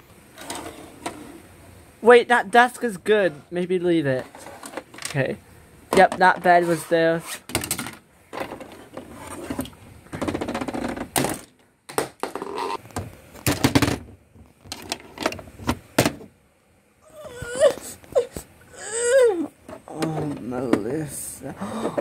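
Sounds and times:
plastic toys clattering on wood: 0:07.5 - 0:09.1, 0:10.1 - 0:12.8
person whimpering: 0:17.0 - 0:22.0.

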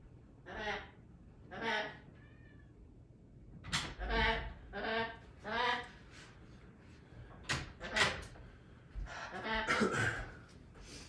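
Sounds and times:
parrot cries: 0:00.4 - 0:02.8.

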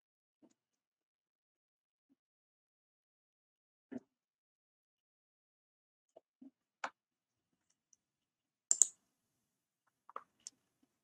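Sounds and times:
computer mouse clicks: 0:08.7 - 0:09.0.

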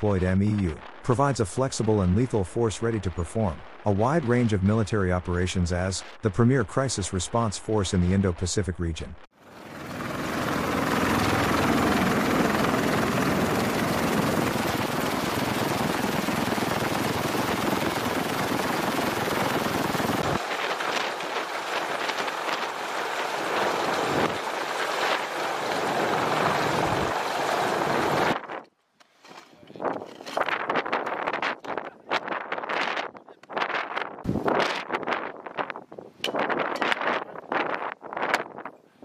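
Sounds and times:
helicopter rotor and turbine running: 0:09.4 - 0:28.5.

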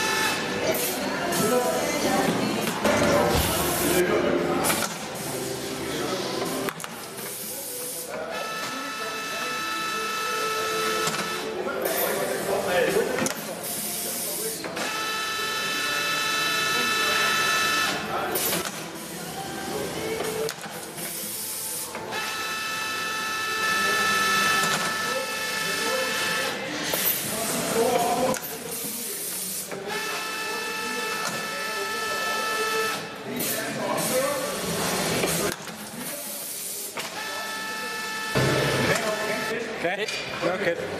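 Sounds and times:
pneumatic hisses and clicks: 0:34.9 - 0:37.2.

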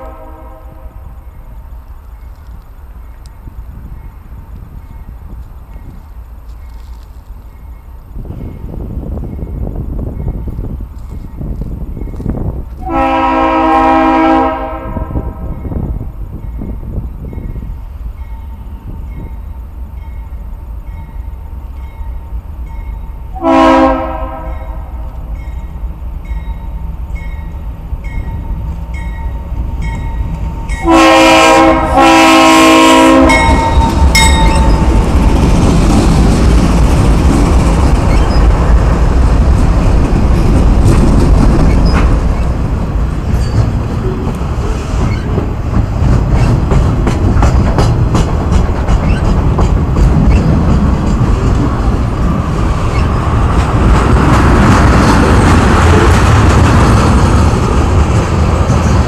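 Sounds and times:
locomotive air horn blasts: 0:00.0 - 0:01.1, 0:12.8 - 0:15.6, 0:23.3 - 0:25.0, 0:30.8 - 0:34.0
freight train rumbling on rails: 0:00.0 - 0:59.0
crossing bell dinging: 0:15.4 - 0:23.4, 0:24.4 - 0:31.4, 0:33.2 - 0:35.4, 0:43.3 - 0:44.4.

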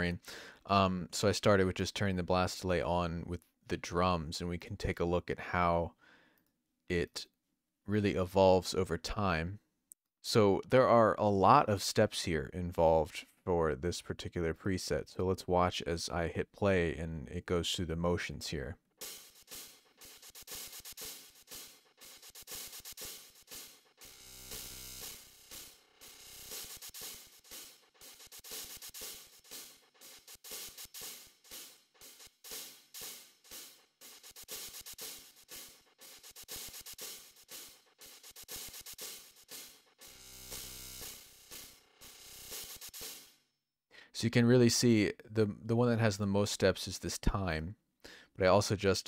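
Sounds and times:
drum loop with delay echoes: 0:19.0 - 0:43.3.

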